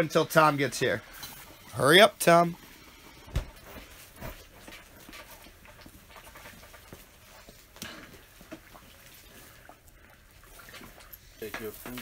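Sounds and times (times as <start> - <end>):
metal utensils scraping iron pot: 0.1 - 2.4, 10.7 - 12.0.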